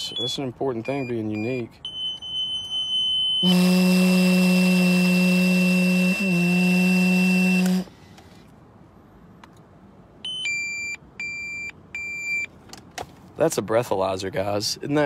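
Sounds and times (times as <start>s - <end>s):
beeps: 0.0s - 3.4s, 10.2s - 12.5s
device hum with high tone: 1.9s - 7.9s.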